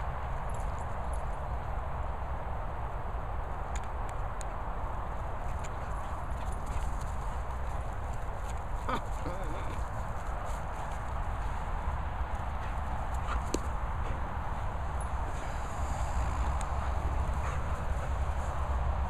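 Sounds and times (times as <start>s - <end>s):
dogs running on grass: 4.8s - 19.0s.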